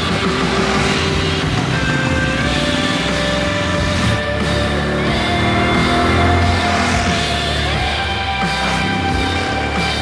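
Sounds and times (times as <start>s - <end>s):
background music: 0.0s - 10.0s
motorcycle engine running: 0.0s - 10.0s.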